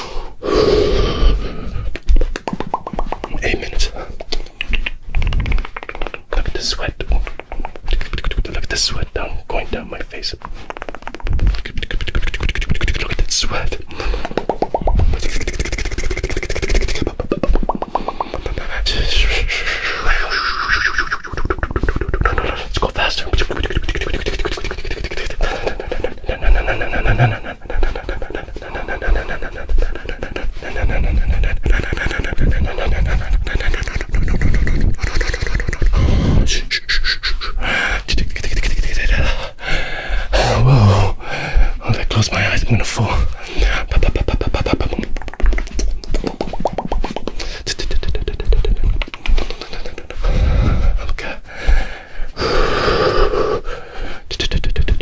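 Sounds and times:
wet mouth clicks and smacks: 0:01.4 - 0:09.2, 0:10.1 - 0:39.5, 0:43.1 - 0:52.0, 0:53.7 - 0:55.0.

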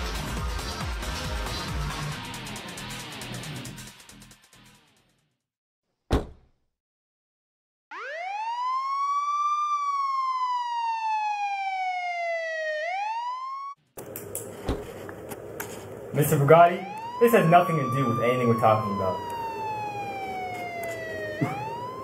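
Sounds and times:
siren wail: 0:07.9 - 0:13.8, 0:16.2 - 0:22.0
room noise: 0:14.0 - 0:22.0.

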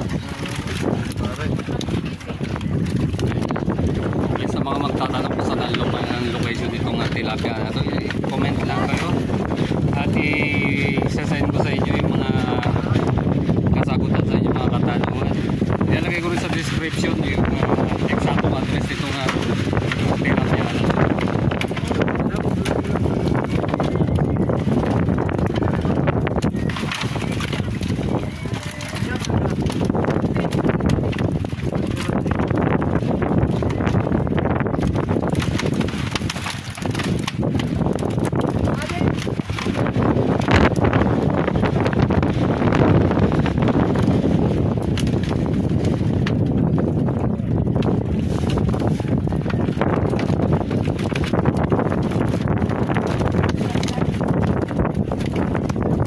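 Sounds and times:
fish slapping against plastic crates: 0:00.0 - 0:13.2, 0:15.7 - 0:56.0
wind buffeting microphone: 0:00.0 - 0:56.0.

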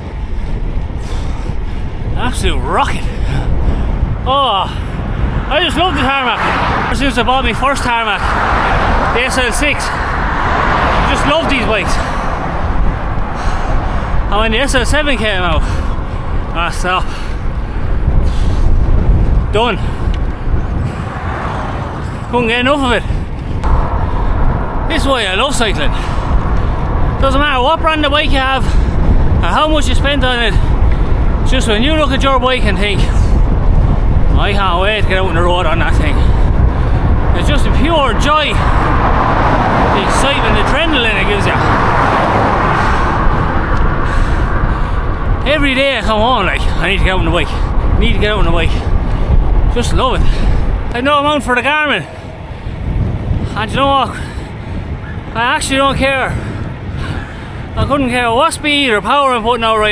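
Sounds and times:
wind buffeting microphone: 0:00.0 - 0:59.9.

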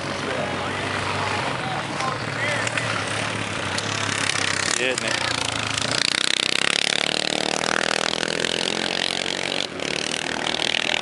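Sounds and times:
faint voices: 0:00.0 - 0:06.0
snowmobile engines droning: 0:00.0 - 0:11.0.

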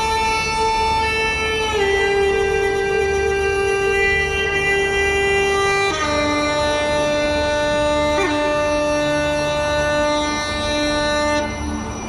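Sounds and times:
uilleann pipes playing: 0:00.0 - 0:12.0.

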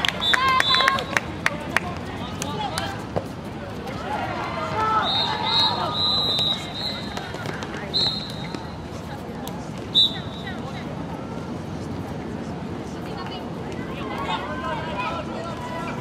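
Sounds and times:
players calling out: 0:03.8 - 0:08.8.

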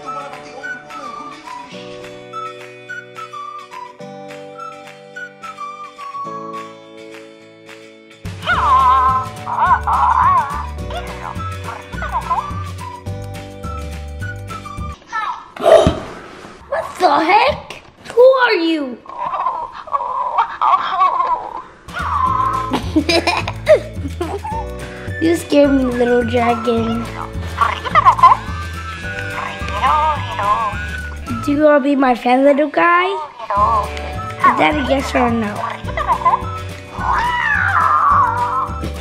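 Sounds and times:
background music: 0:00.0 - 0:15.0, 0:21.8 - 0:39.0
toy warbling creature call: 0:36.9 - 0:38.7.

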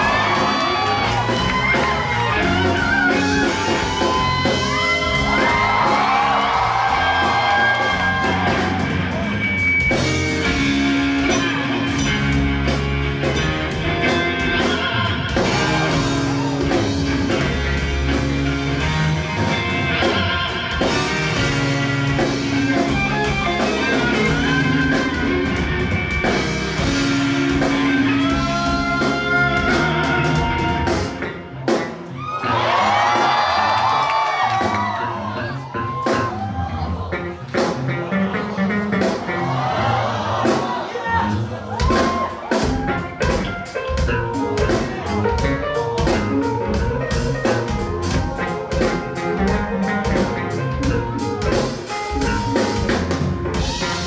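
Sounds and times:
electric bass line: 0:00.0 - 0:32.0, 0:41.2 - 0:54.0
electric guitar: 0:00.0 - 0:39.5, 0:41.3 - 0:54.0
drums: 0:00.0 - 0:54.0
live instrumental band: 0:00.0 - 0:54.0.

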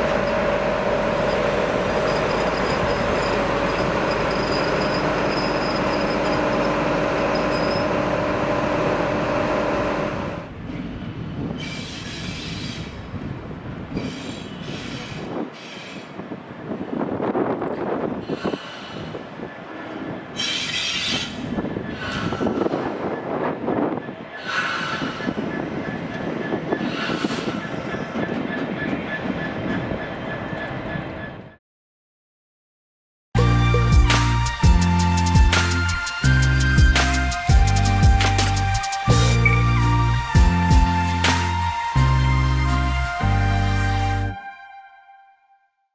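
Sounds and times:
train engine tone: 0:00.0 - 0:11.0, 0:33.4 - 0:44.4
wheels rumbling on track: 0:00.0 - 0:31.6, 0:33.4 - 0:44.3
high-pitched wheel squeals: 0:01.2 - 0:08.1.

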